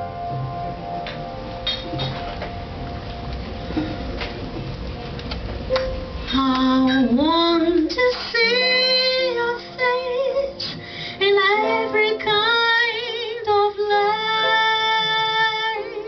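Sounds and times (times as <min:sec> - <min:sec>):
piano: 0:00.0 - 0:16.0
woman singing jazz ballad: 0:06.2 - 0:16.0.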